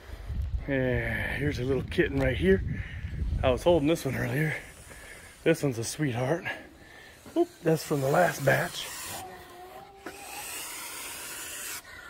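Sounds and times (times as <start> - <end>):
goose hissing: 3.8 - 12.0.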